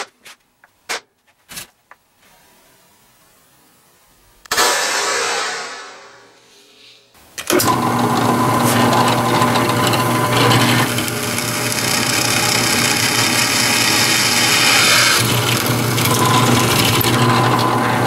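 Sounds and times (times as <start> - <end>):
drill press drilling into steel: 7.4 - 18.0.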